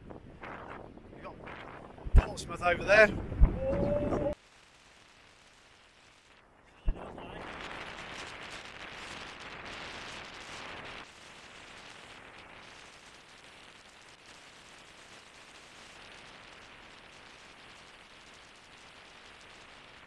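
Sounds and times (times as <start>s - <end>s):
wind buffeting microphone: 0.0s - 4.4s.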